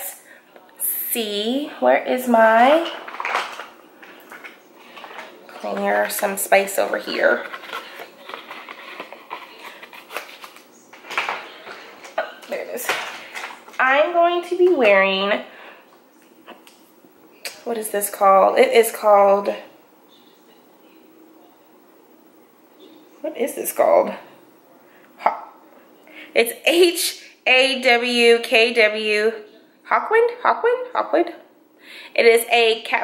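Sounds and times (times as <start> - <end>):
woman's voice: 0.8 - 3.1, 5.5 - 7.8, 12.2 - 15.6, 17.5 - 19.8, 23.2 - 24.4, 26.3 - 33.0
rustling of containers: 2.6 - 13.8.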